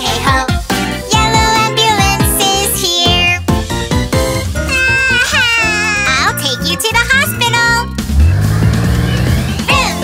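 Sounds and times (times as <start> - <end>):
children's song backing track: 0.0 - 10.0
cartoon engine revving: 8.1 - 9.9.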